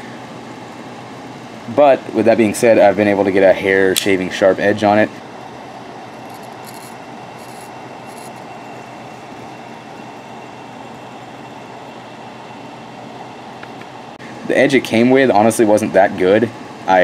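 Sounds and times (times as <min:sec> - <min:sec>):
air-conditioner hum: 0:00.0 - 0:17.0
knife blade shaving hair: 0:06.2 - 0:09.3.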